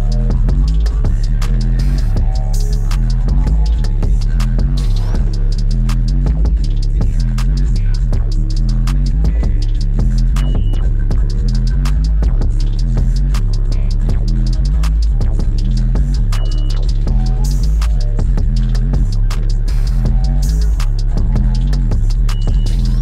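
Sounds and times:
loud bass-heavy music: 0.0s - 23.0s.

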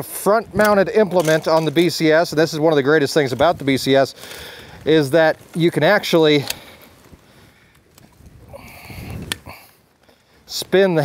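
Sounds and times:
hands rustling on handlebar controls: 0.0s - 11.0s.

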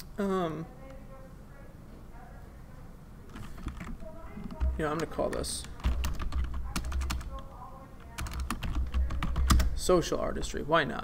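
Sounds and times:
typing on computer keyboard: 3.4s - 9.8s.

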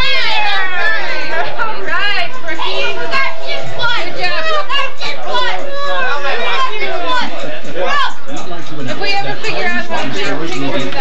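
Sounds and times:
overlapping voices talking: 0.0s - 11.0s.

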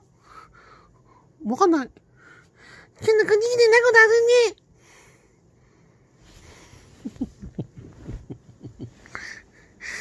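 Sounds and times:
wheezy breathing: 0.0s - 1.4s, 4.8s - 7.1s, 9.0s - 10.0s.

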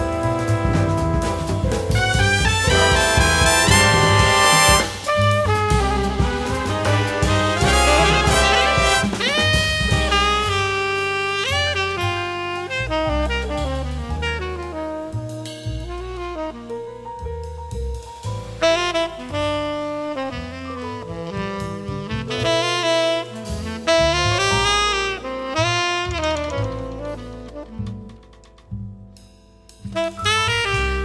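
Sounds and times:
brass: 0.0s - 17.5s, 18.3s - 28.6s, 29.9s - 31.0s
drum kit: 0.0s - 31.0s
sharp drum hits: 0.5s - 10.3s
saxophone section melody: 2.0s - 13.7s, 30.0s - 31.0s.

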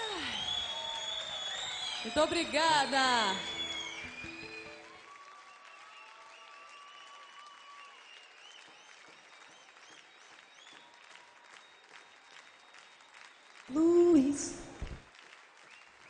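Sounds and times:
faint high whistles: 0.0s - 2.1s, 3.4s - 13.4s
faint audience applause: 0.0s - 16.0s.

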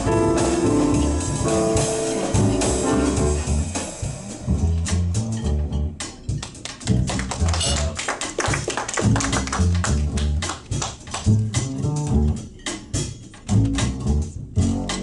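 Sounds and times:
plucked double bass: 0.0s - 3.8s, 4.5s - 6.1s, 6.9s - 8.0s, 9.0s - 12.7s, 13.4s - 15.0s
drum kit strokes: 0.0s - 15.0s
jazz band playing: 0.0s - 15.0s.

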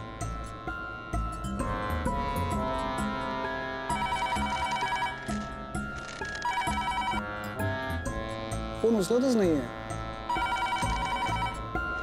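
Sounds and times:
telephone warbling ring: 3.9s - 5.3s, 6.4s - 7.3s, 10.3s - 11.7s.

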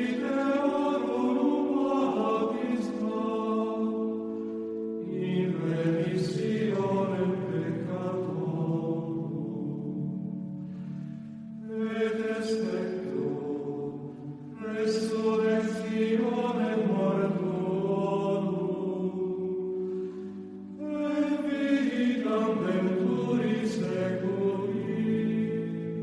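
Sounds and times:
person singing a chant: 0.0s - 10.5s, 11.6s - 20.1s, 20.8s - 26.0s.

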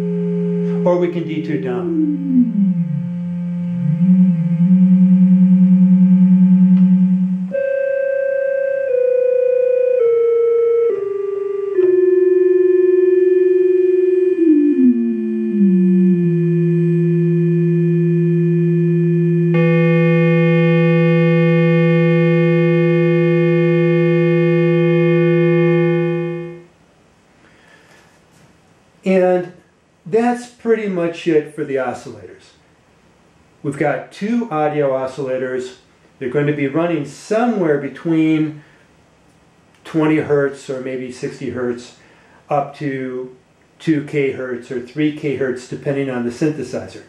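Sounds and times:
synthesizer sustained tones: 0.0s - 26.7s, 39.9s - 40.4s.

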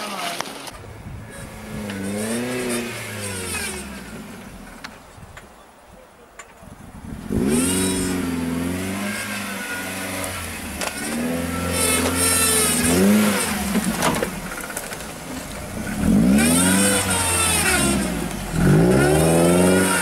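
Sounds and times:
engine revving: 1.2s - 4.9s, 7.2s - 20.0s.

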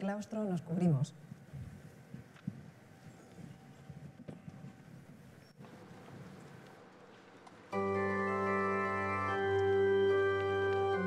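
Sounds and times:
audience shuffling: 5.6s - 11.0s.

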